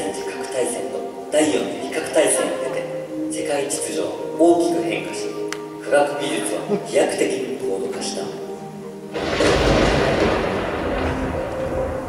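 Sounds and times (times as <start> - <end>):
deep noisy rumble: 9.2 - 12.0.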